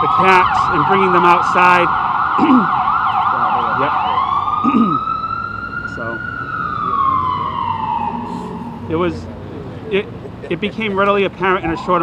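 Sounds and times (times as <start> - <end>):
emergency vehicle siren: 0.0 - 12.0.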